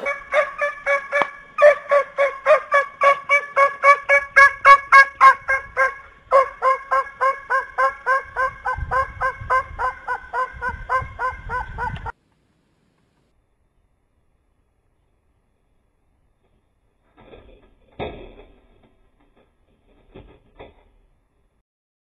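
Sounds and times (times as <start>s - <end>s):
fowl honking calls: 0.0s - 12.1s.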